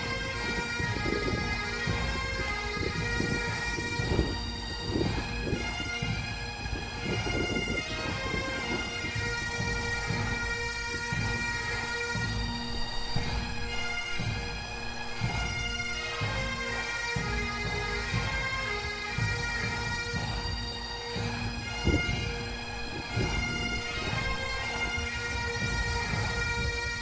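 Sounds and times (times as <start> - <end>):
bagpipe music: 0.0 - 27.0.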